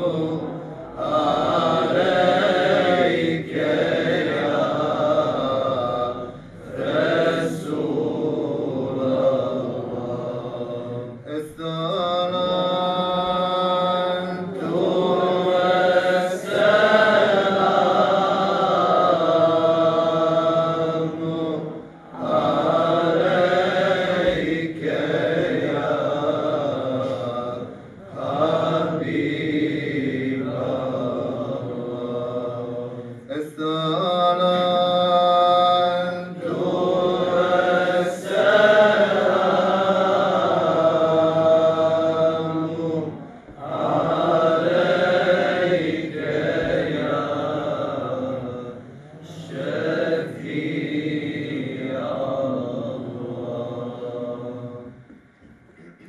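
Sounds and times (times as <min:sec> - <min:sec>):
man chanting into a microphone: 0:09.1 - 0:16.4, 0:31.4 - 0:36.4.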